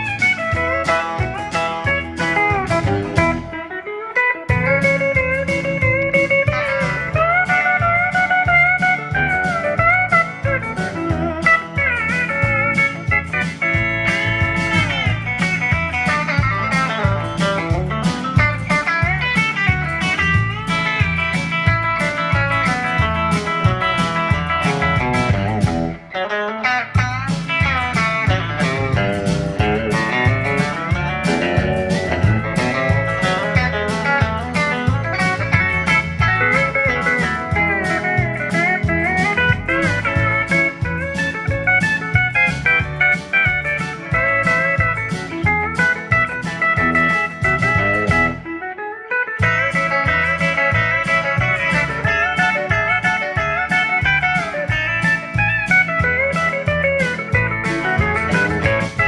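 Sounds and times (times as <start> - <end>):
steady beat: 0.0 - 26.2, 27.0 - 48.5, 49.4 - 59.0
electric guitar: 0.0 - 59.0
pedal steel guitar: 0.0 - 59.0.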